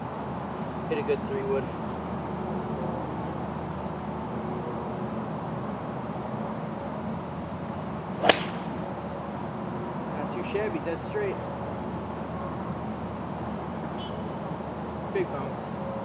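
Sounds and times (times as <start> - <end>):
golf club striking ball: 8.2 - 8.9.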